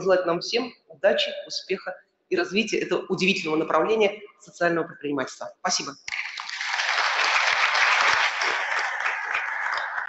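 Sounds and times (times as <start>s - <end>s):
audience applauding: 6.1s - 10.0s.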